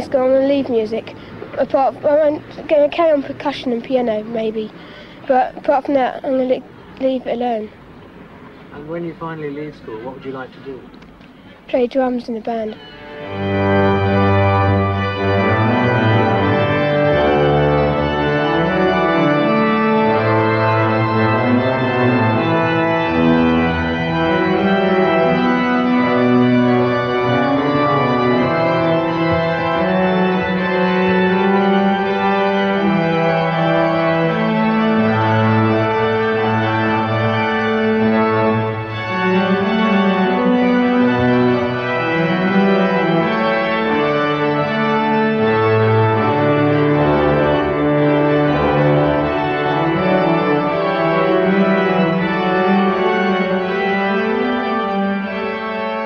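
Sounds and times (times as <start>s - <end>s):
pipe organ chords: 12.8s - 56.0s.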